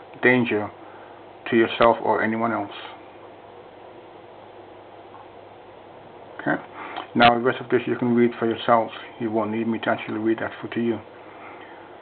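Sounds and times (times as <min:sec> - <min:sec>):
faint room tone hiss: 0:00.0 - 0:12.0
man speaking: 0:00.2 - 0:00.8, 0:01.4 - 0:03.0, 0:06.4 - 0:11.1.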